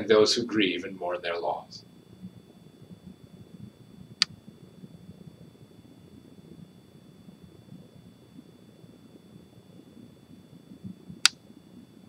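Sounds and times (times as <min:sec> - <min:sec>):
thin high whine: 0:00.0 - 0:12.0.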